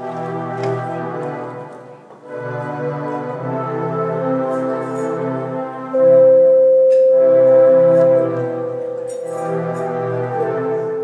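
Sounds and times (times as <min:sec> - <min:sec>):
layered sustained tones: 0:05.9 - 0:11.0
loud held note: 0:06.0 - 0:11.0.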